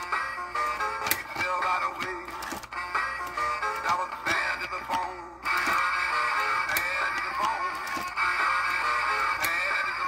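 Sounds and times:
song with guitar from small speaker: 0.0 - 10.0.

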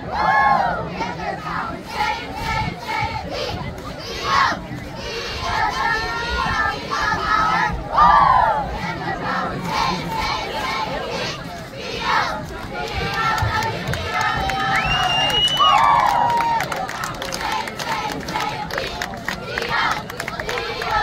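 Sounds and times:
crowd noise: 0.0 - 21.0.

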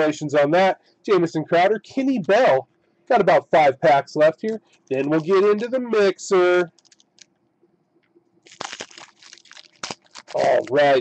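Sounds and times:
crackling rips and snaps: 6.7 - 7.4, 8.0 - 11.0
foil wrapper tearing and crinkling: 6.8 - 7.3, 8.4 - 11.0.

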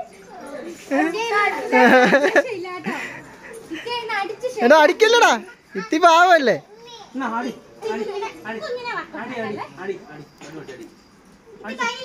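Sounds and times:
children chattering: 0.0 - 12.0
child shouting: 4.1 - 7.2, 11.6 - 12.0.

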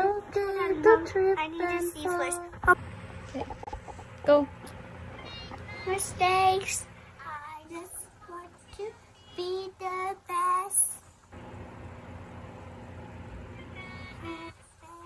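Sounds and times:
young child singing: 0.0 - 2.6, 5.2 - 11.0, 13.8 - 15.0.

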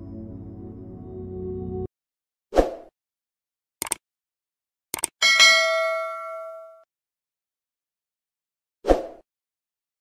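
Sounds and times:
quick double click: 3.8 - 4.0, 4.9 - 5.2
notification bell ding: 5.2 - 6.8.

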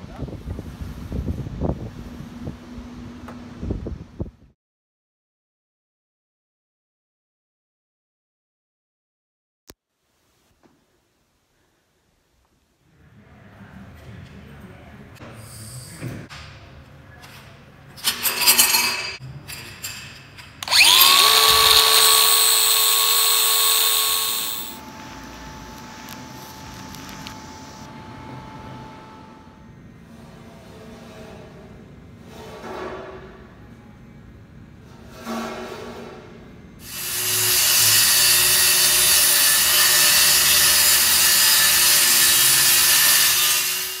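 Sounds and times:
circular saw cutting plywood: 20.6 - 27.9, 36.8 - 44.0
power tool motor whine: 20.6 - 27.9, 36.8 - 44.0.

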